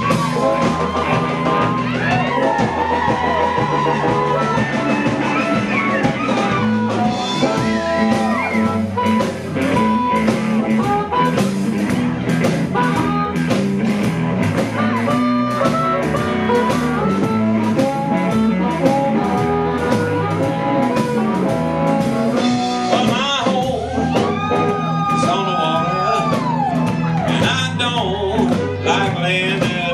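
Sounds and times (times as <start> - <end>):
drum kit steady beat: 0.0 - 29.9
electric bass: 0.0 - 29.9
electric guitar: 0.0 - 29.9.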